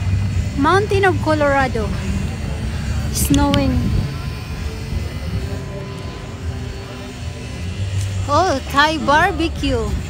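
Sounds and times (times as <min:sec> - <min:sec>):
faint motor-like hum: 0:00.0 - 0:10.0
low street rumble: 0:00.0 - 0:10.0.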